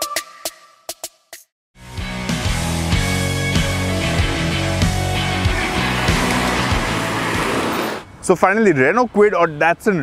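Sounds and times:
rock backing music: 1.8 - 8.0
car driving past: 5.2 - 8.0.

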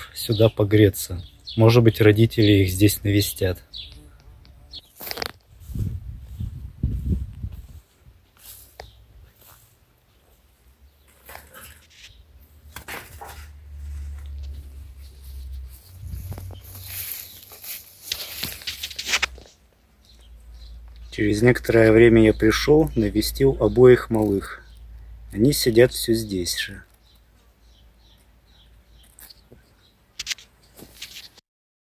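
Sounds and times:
rustling through tall grass: 4.8 - 10.5, 12.9 - 19.7
wind rumble on microphone: 5.5 - 8.0, 15.8 - 16.7.

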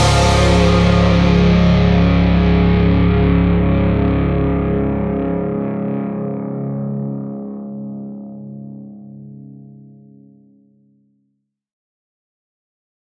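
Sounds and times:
cymbal wash: 0.0 - 3.7
distorted electric guitar chord: 0.0 - 7.5.

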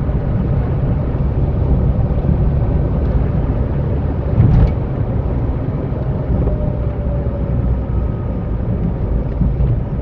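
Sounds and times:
car engine and tyre rumble: 0.0 - 10.0.

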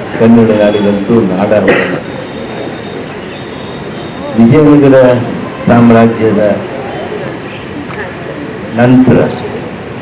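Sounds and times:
outdoor gathering background noise: 0.0 - 10.0.

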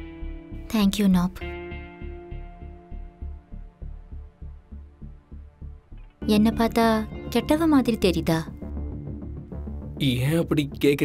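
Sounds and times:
pulsing heartbeat-like beat: 2.7 - 10.6.

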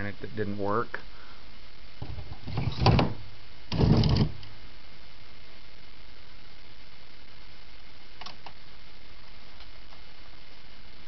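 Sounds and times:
wooden cabinet door scraping open: 2.0 - 4.4.

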